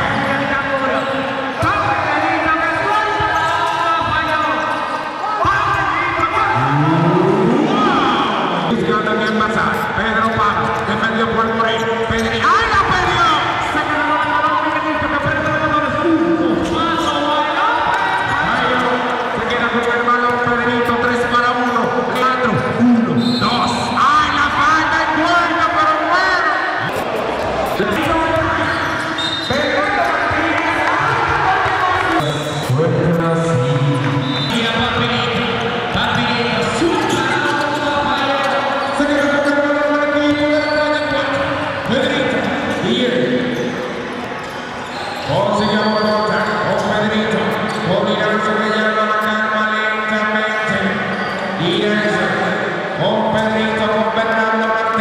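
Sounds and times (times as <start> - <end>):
commentator talking: 5.4 - 43.6.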